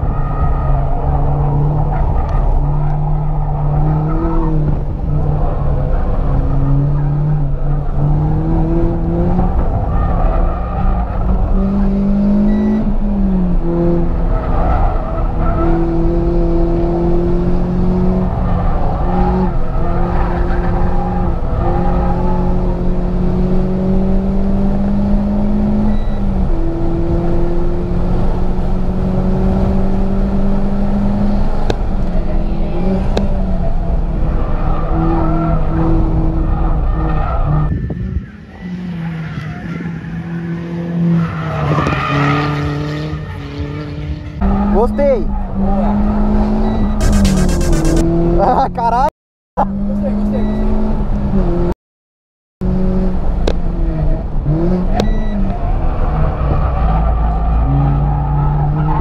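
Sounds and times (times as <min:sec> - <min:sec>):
car engine revving through gears: 0:00.0 - 0:37.7, 0:38.7 - 0:48.9, 0:49.6 - 0:51.8, 0:52.6 - 0:59.0.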